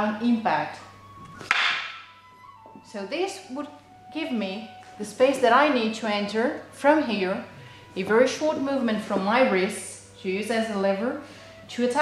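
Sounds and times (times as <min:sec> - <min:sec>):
wooden practice swords clacking: 0:01.3 - 0:02.0.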